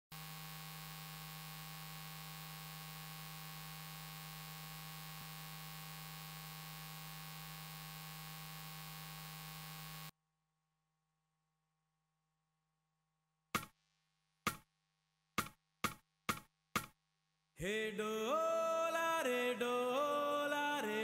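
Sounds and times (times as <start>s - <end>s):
electrical hum with hiss: 0.2s - 10.1s.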